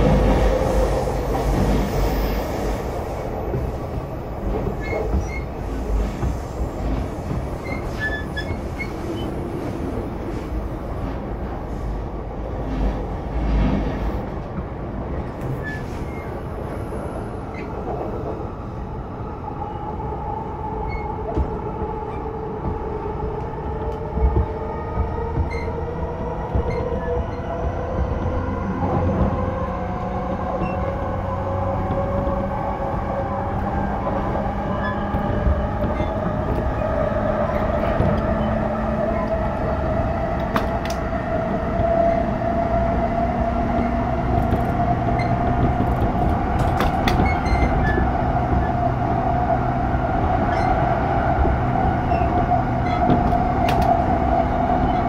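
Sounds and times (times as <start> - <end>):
train wheel and rail noise: 0.0 - 55.0
clicks over rail joints: 44.2 - 48.7.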